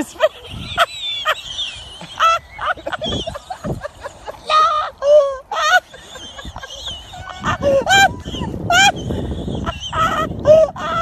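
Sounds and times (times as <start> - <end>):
people squealing and yelping: 0.0 - 11.0.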